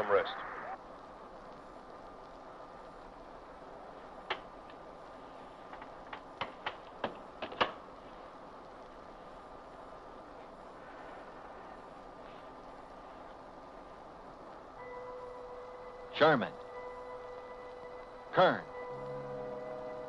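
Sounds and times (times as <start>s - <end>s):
electronic hum: 14.8s - 20.0s
faint held tone: 14.8s - 20.0s.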